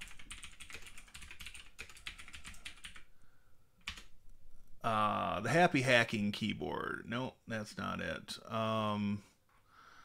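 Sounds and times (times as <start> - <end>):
typing on computer keyboard: 0.0 - 3.1, 3.8 - 4.1.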